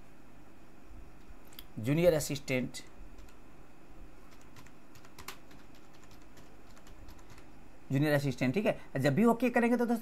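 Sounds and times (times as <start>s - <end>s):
keyboard typing clicks: 3.2s - 3.4s, 4.3s - 7.5s.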